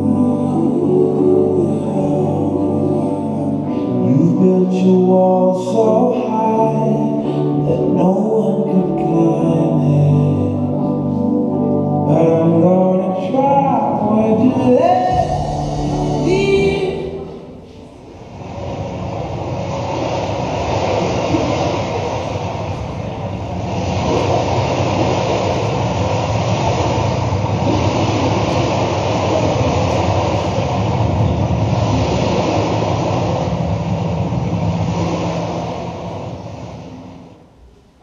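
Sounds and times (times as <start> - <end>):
loud steady noise over speakers: 0.0 - 38.0.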